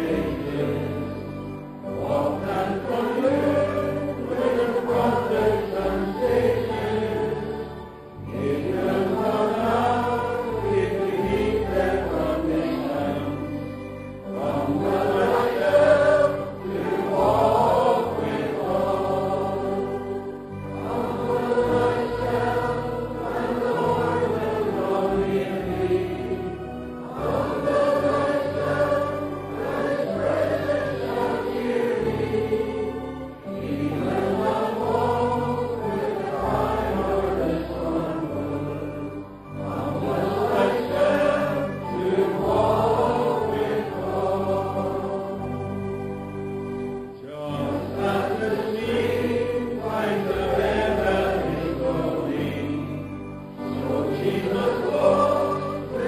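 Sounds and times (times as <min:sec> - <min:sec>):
choir singing worship song: 0:00.0 - 0:56.0.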